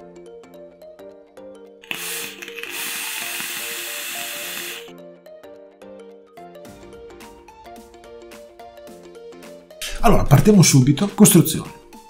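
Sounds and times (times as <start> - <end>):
background music: 0.0 - 12.0
vape atomizer hissing: 1.8 - 4.9.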